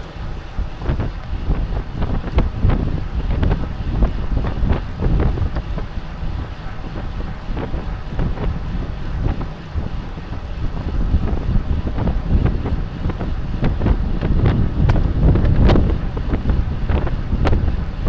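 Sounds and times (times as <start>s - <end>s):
low road rumble: 0.0s - 18.0s
wind buffeting microphone: 0.0s - 18.0s.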